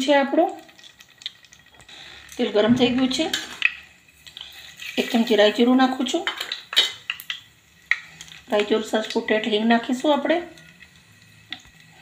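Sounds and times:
metal kitchen utensils clinking: 4.8s - 7.1s.

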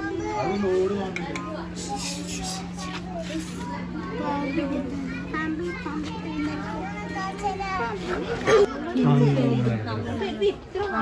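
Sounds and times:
steady low hum: 0.0s - 10.4s
children chattering and calling out: 0.0s - 11.0s.

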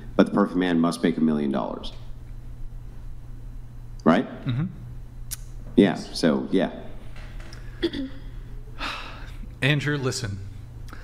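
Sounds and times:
steady low hum: 0.0s - 11.0s
intake of breath: 8.8s - 9.4s.

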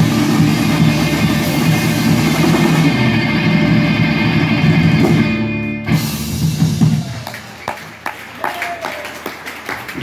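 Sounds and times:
rock band playing: 0.0s - 8.3s.

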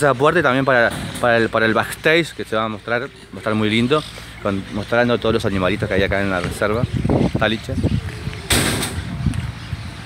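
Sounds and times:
door slamming: 8.5s - 9.1s.

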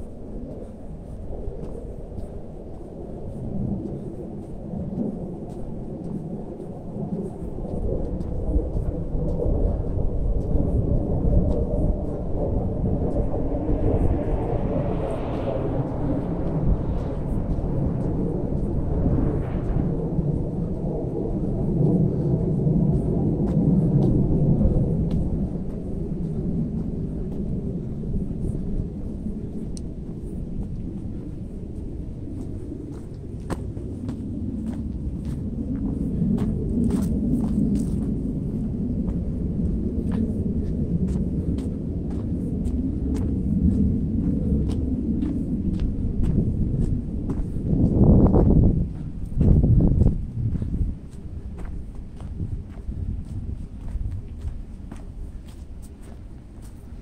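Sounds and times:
low rumble of wind noise: 0.0s - 57.0s.

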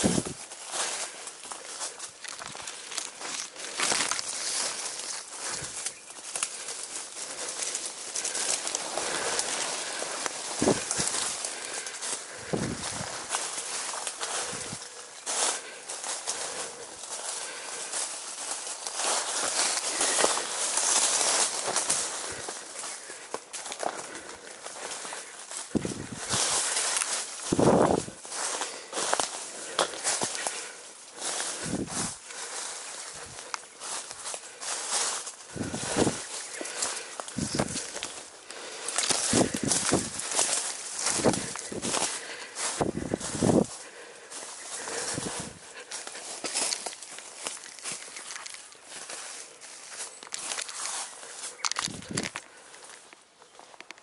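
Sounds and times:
footsteps on dry leaves: 0.0s - 54.0s
rustling through undergrowth: 0.0s - 54.0s.

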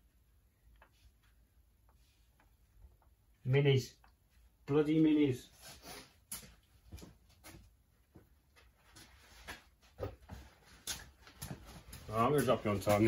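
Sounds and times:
footsteps on concrete floor: 5.7s - 13.0s.

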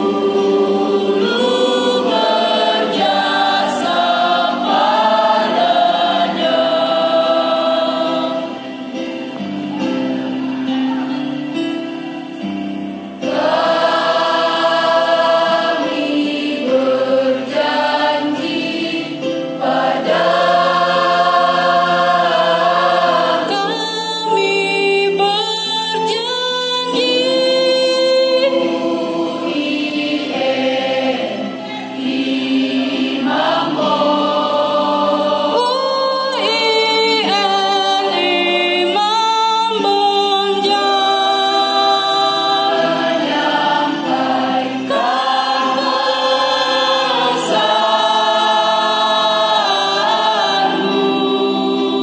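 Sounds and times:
choir singing a hymn: 0.0s - 52.0s.

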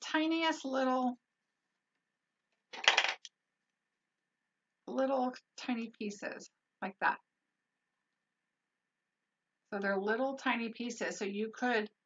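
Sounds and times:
plastic tool clattering: 2.8s - 3.3s.

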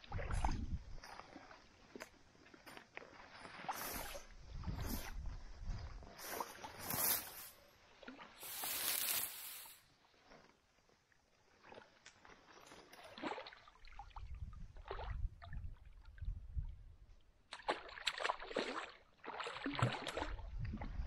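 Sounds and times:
wind rumble on microphone: 0.0s - 1.2s, 3.9s - 6.9s, 14.0s - 17.2s, 20.2s - 21.0s
grass and clothing rustling: 0.9s - 10.6s.

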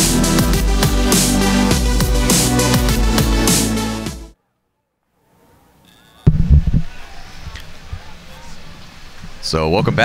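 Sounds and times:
faint outdoor ambience: 4.4s - 10.0s.

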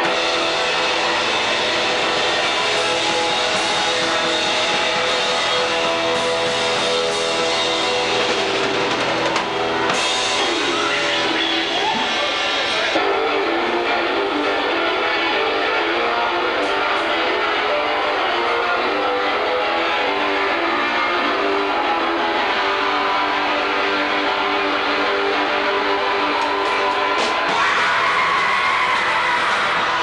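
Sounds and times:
punk rock band playing: 0.0s - 30.0s.

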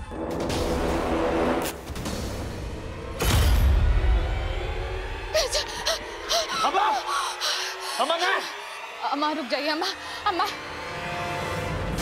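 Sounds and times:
person gasping and crying out: 5.3s - 7.8s.

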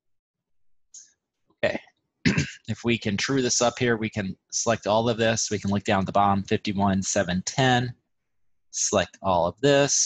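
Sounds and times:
man saying okay: 1.6s - 2.6s
man clearing his throat: 2.2s - 2.7s.

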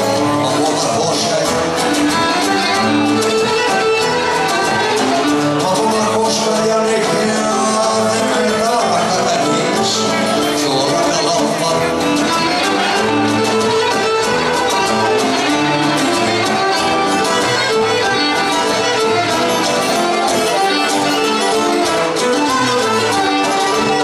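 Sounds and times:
plucked strings accompaniment: 0.0s - 24.0s.

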